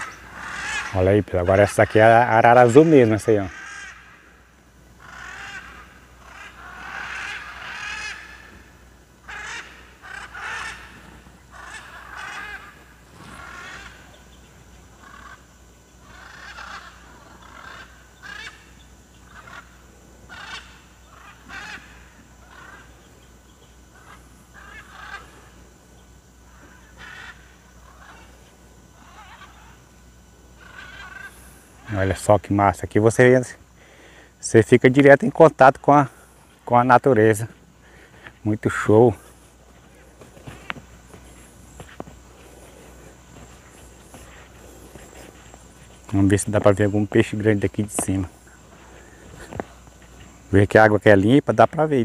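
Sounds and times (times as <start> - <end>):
macaws squawking: 0.0 - 52.0.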